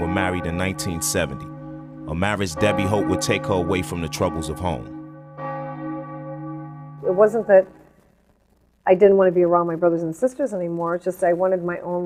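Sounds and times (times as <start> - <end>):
bell ringing: 0.0 - 7.6
held musical tone: 0.0 - 7.6.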